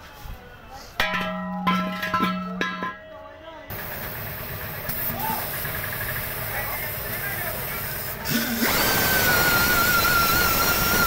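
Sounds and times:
motor running: 3.8 - 11.0.

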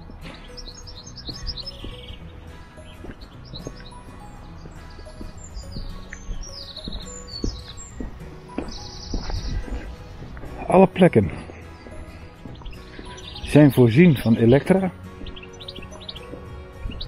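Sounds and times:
small birds chirping and trilling: 0.0 - 17.0
soft background music: 0.0 - 17.0.

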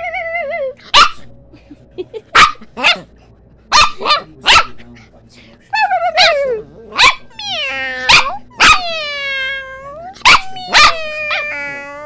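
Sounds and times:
small dog barking: 0.9 - 1.3, 2.4 - 3.0, 3.7 - 4.8, 7.0 - 9.0, 10.1 - 11.4.

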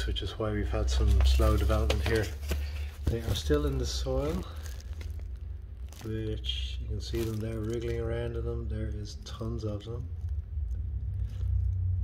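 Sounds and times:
low rumble: 2.7 - 12.0.

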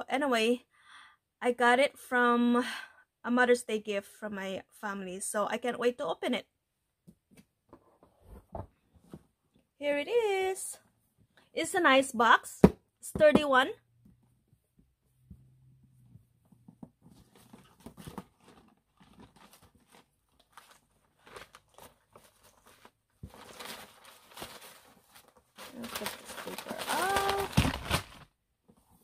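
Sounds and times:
tissue paper rustling: 17.2 - 28.4.

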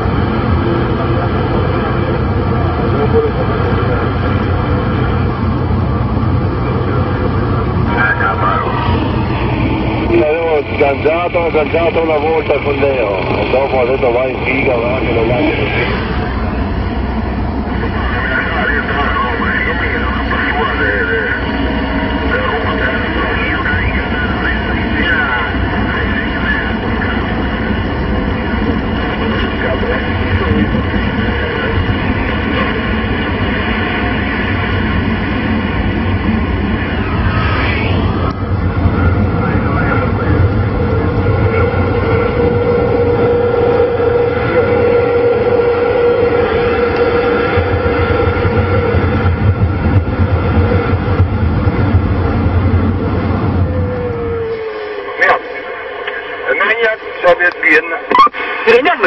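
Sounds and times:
faint garbled radio voices: 6.6 - 16.4, 17.8 - 33.0, 53.9 - 59.0
radio static and hiss: 7.8 - 16.5, 17.7 - 27.8, 28.4 - 33.8, 54.6 - 59.0
steady radio whistle: 7.8 - 16.7, 17.7 - 49.6, 53.6 - 59.0
sweeping radio whistle: 41.5 - 49.2, 53.6 - 59.0.

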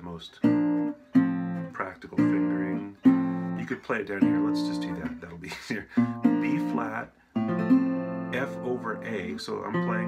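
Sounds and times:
resonator guitar strumming: 0.0 - 10.0
person speaking: 1.6 - 7.2, 8.2 - 10.0.

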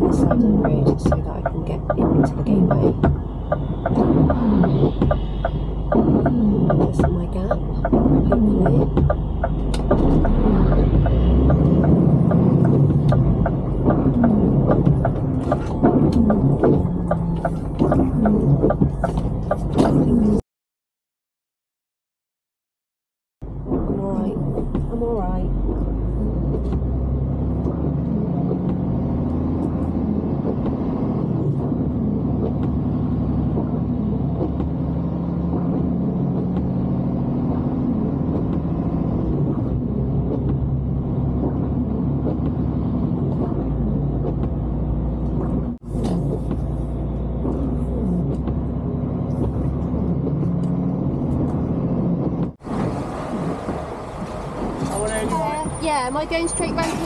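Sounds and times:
lorry diesel engine running: 0.0 - 20.4.

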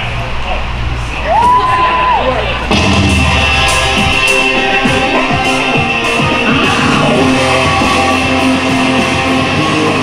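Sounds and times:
entrance music over loudspeakers: 2.6 - 10.0.

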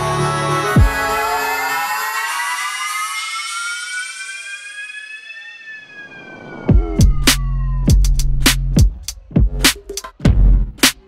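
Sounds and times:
siren-like synthesizer tone: 1.0 - 8.5.

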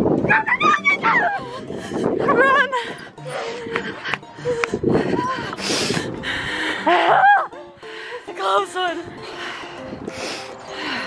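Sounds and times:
child squealing: 0.3 - 1.4.

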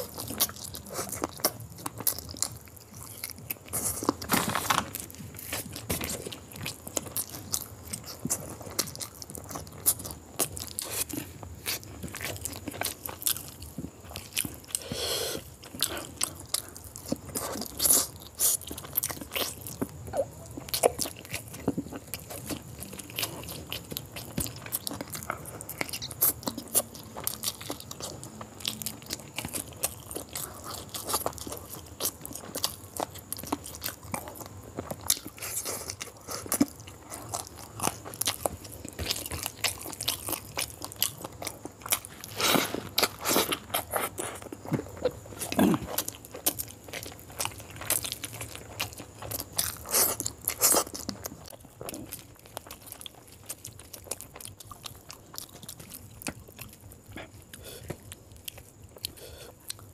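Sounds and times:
close chewing with wet clicks: 0.0 - 59.9.

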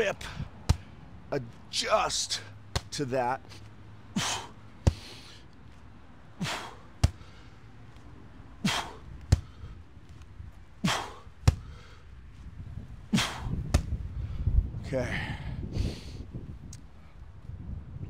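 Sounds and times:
forceful breaths: 0.2 - 1.3, 2.3 - 5.8, 6.4 - 10.2, 10.8 - 16.3
sandbag smacking: 6.4 - 7.3, 10.9 - 11.7.

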